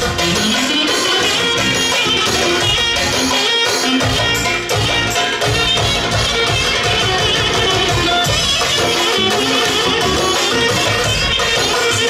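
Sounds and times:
live folk dance band: 0.0 - 12.0
saxophone melody: 0.0 - 12.0
steady drum beat: 0.0 - 12.0.

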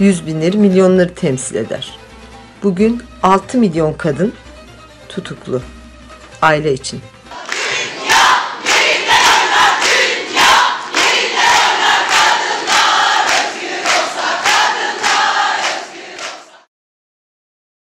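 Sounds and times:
rhythmic hand claps: 7.3 - 16.7
women chanting in unison: 7.3 - 16.7.

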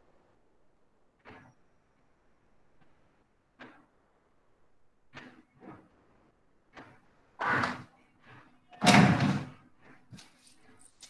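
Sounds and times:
noisy bang: 8.8 - 9.6.

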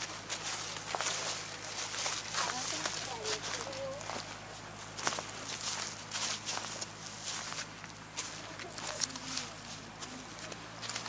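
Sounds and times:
footsteps on dry straw: 0.0 - 11.0
steady low hum: 0.0 - 11.0.

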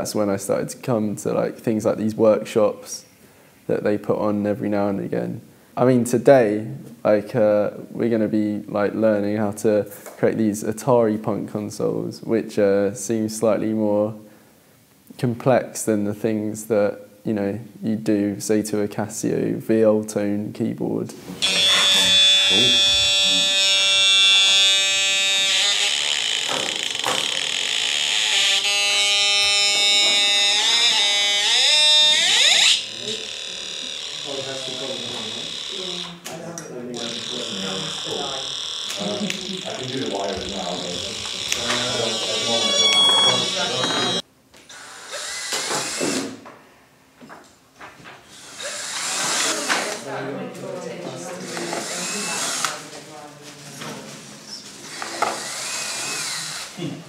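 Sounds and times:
people talking: 0.0 - 3.1, 3.7 - 14.2, 15.1 - 23.5, 32.9 - 33.3, 34.2 - 44.2, 56.8 - 57.0
harsh buzzing synth tone: 21.4 - 36.2, 36.9 - 44.2.

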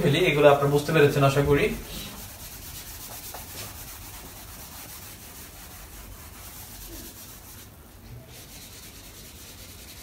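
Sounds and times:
eraser wiping whiteboard: 1.9 - 10.0.

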